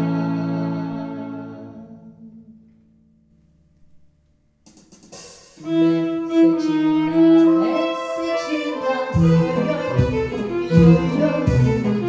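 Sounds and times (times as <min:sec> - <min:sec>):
bowed string ensemble: 0:00.0 - 0:02.3, 0:05.6 - 0:12.0
sustained violin melody: 0:05.6 - 0:12.0.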